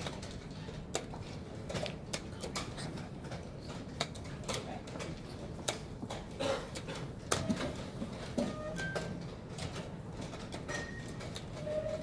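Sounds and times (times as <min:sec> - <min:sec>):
low hum of large hall: 0:00.0 - 0:12.0.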